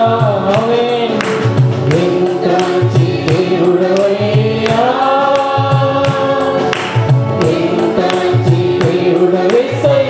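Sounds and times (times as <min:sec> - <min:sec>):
choir singing in unison: 0:00.0 - 0:10.0.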